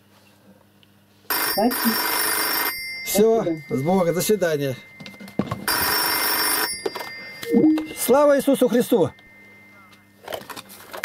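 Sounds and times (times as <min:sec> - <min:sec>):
tone stepping down in pitch: 0:07.4 - 0:08.4.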